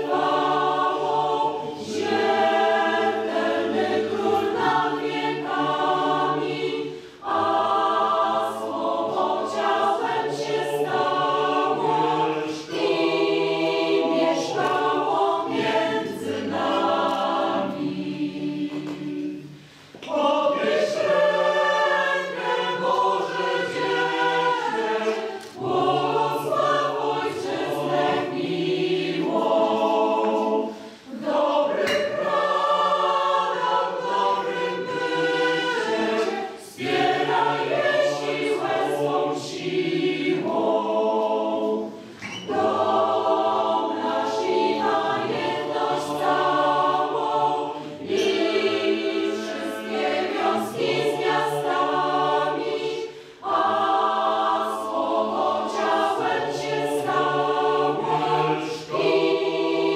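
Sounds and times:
mixed choir singing: 0:00.0 - 0:59.9.

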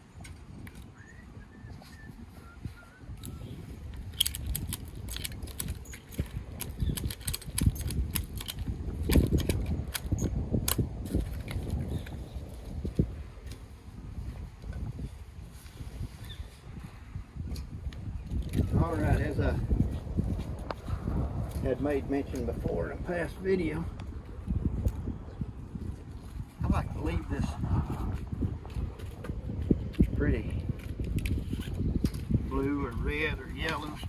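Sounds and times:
steady low rumble: 0:02.4 - 0:34.0.

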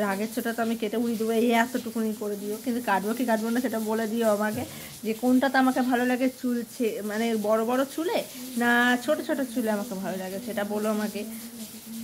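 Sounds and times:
woman singing or talking melodically: 0:00.0 - 0:12.0.

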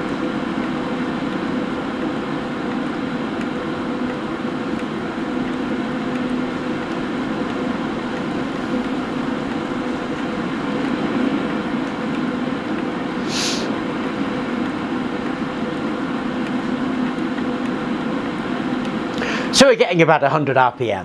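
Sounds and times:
duct fan running: 0:00.0 - 0:21.0.

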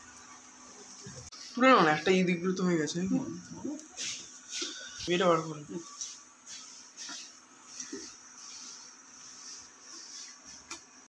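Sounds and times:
pancakes sizzling in a pan: 0:00.0 - 0:11.0
wooden spatula tapping and scraping: 0:05.9 - 0:11.0.

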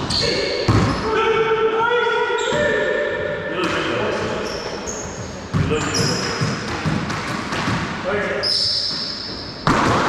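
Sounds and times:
sneakers squeaking on floor: 0:00.0 - 0:01.2, 0:02.1 - 0:10.0.

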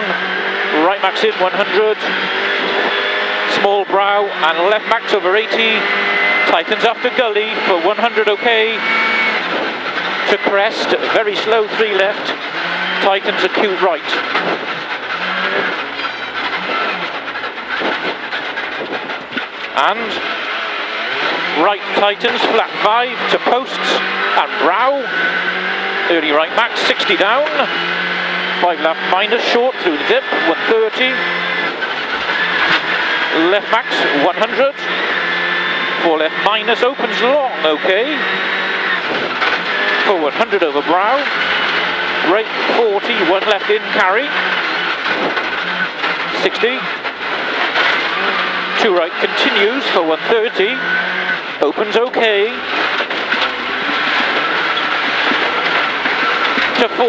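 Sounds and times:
rally car engine revving: 0:00.0 - 0:57.0
tyres on gravel road noise: 0:00.0 - 0:57.0.

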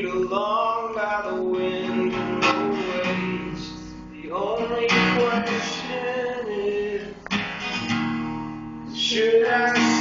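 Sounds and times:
acoustic guitar strum: 0:00.0 - 0:10.0.

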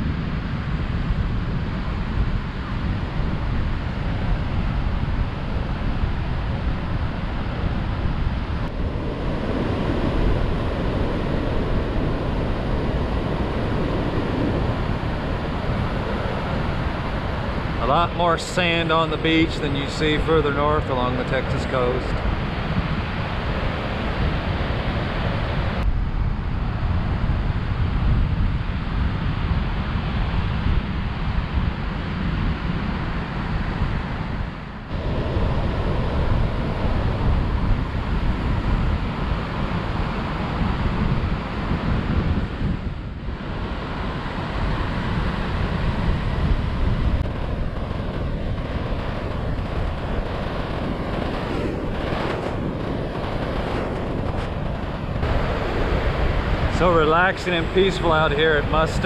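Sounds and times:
wind buffeting microphone: 0:00.0 - 0:59.0
surf breaking on sandy beach: 0:01.4 - 0:25.8, 0:28.9 - 0:59.0.

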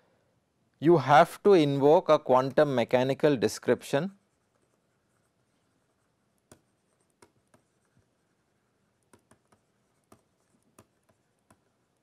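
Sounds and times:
stylus tapping on tablet: 0:06.4 - 0:08.0, 0:09.0 - 0:12.0.

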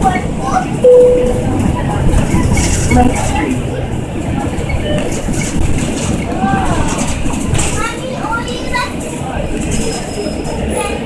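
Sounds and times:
bus engine drone and road noise: 0:00.0 - 0:11.0
short electronic beep: 0:00.8 - 0:01.7.

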